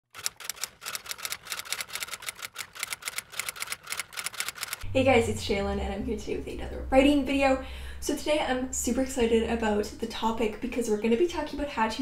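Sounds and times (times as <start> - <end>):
typewriter keys clacking: 0.1 - 4.8.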